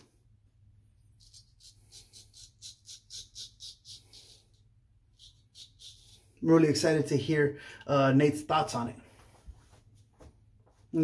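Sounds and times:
razor scraping stubble: 0:01.2 - 0:06.5.

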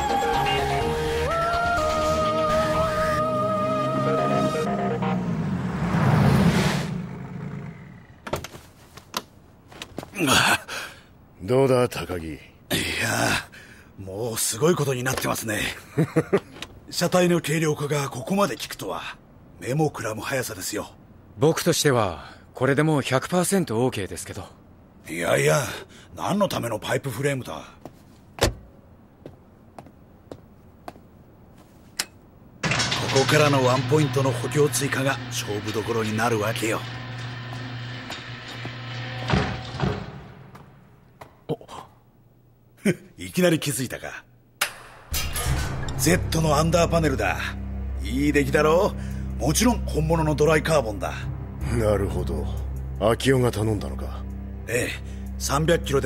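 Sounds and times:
car passing at speed: 0:04.5 - 0:08.1
man speaking: 0:46.0 - 0:56.0.

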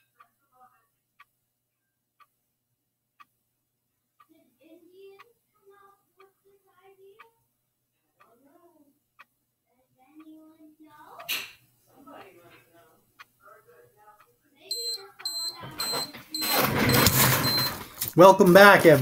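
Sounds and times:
timer alarm beeping: 0:14.7 - 0:17.8.

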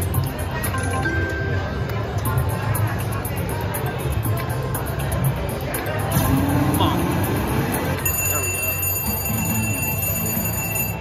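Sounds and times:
slot machine electronic ring: 0:00.1 - 0:01.9, 0:04.7 - 0:11.0.

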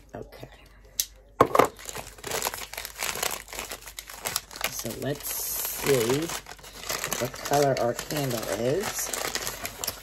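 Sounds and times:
paper bag crinkling and rustling: 0:01.6 - 0:10.0.

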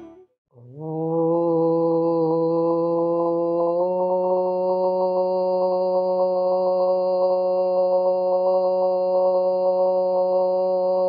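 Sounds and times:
person chanting a long note: 0:00.0 - 0:11.0.

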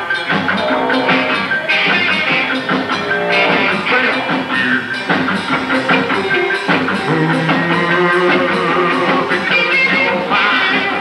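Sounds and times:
electric guitar strumming: 0:00.0 - 0:11.0
live rock band playing: 0:00.0 - 0:11.0.

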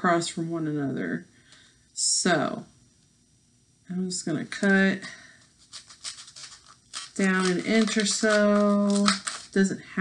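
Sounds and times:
scissors snipping paper: 0:05.6 - 0:09.6.

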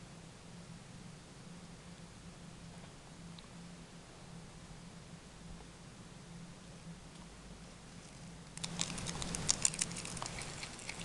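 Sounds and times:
animal crunching leafy greens: 0:07.9 - 0:11.0.

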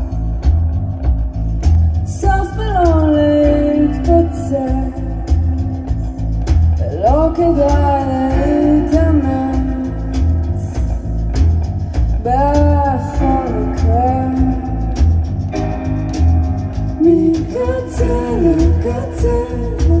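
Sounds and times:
person singing: 0:00.0 - 0:16.1, 0:16.9 - 0:20.0
drum kit: 0:00.0 - 0:20.0
electric bass line: 0:00.0 - 0:20.0.

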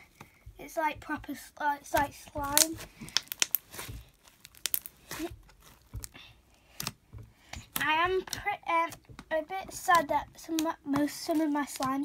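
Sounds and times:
slime kneaded crackling and squelching: 0:00.0 - 0:12.0.

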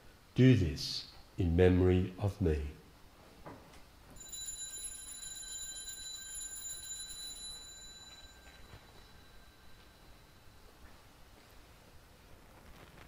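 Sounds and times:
altar bells ringing: 0:04.2 - 0:11.2.

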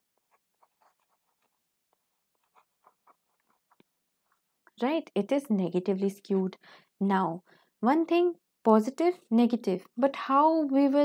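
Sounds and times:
pen scratching on paper: 0:00.0 - 0:03.9.

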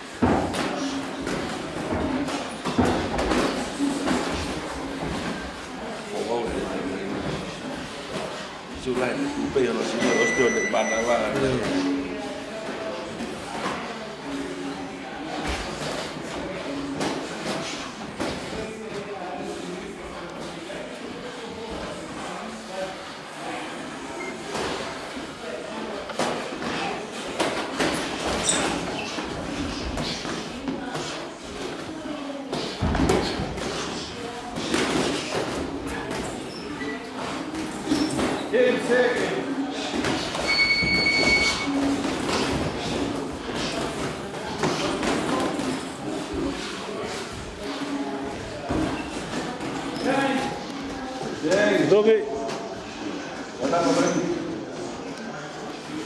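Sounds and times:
short electronic beep: 0:10.0 - 0:11.2, 0:40.5 - 0:41.7.

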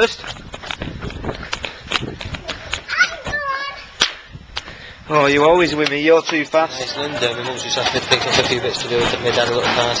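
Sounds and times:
running footsteps on pavement: 0:00.0 - 0:04.9, 0:05.6 - 0:07.5
child calling out: 0:02.9 - 0:04.0.

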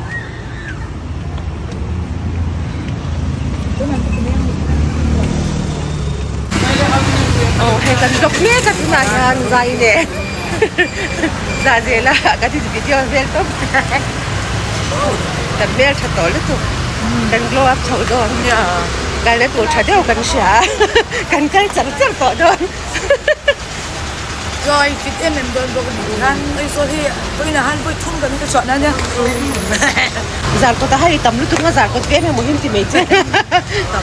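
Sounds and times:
traffic engine rumble: 0:00.0 - 0:34.0
people talking: 0:06.5 - 0:14.1, 0:14.8 - 0:23.5, 0:24.6 - 0:34.0.

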